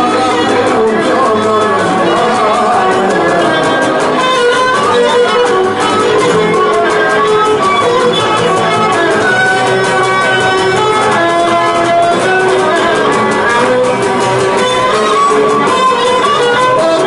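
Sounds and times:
bowed string melody: 0.0s - 17.0s
strummed lute: 0.0s - 17.0s.

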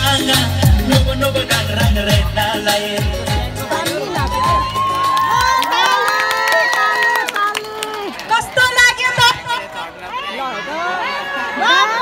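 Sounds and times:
dance music: 0.0s - 6.0s
audience cheering and whooping: 4.1s - 8.6s
people clapping: 4.1s - 9.9s.

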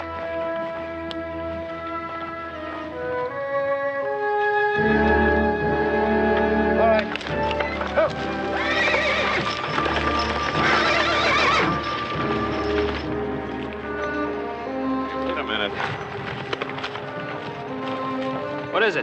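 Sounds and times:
orchestral film music: 0.0s - 19.0s
hoofbeats: 4.8s - 19.0s
horses whinnying: 6.8s - 13.2s.

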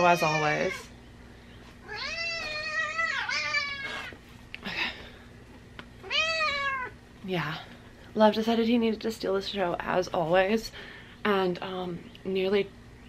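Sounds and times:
cat meowing: 0.0s - 0.9s, 1.8s - 4.1s, 6.0s - 7.0s.

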